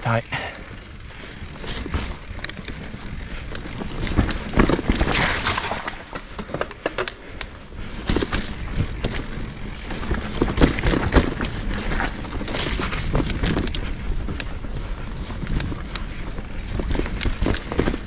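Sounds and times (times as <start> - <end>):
bike tyres rolling over dirt: 0.0 - 18.0
bike knocks and rattles: 0.3 - 18.0.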